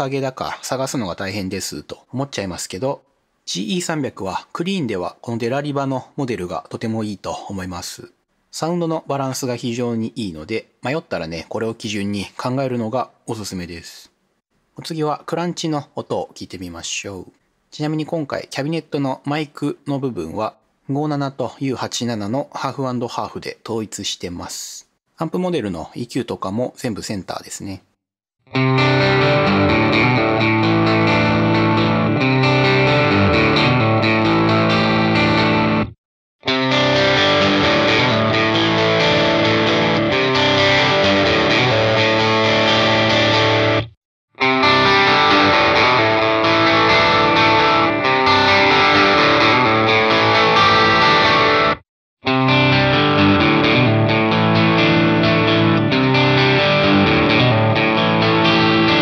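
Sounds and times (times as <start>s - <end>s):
overdriven electric guitar phrases: 28.5s - 59.0s.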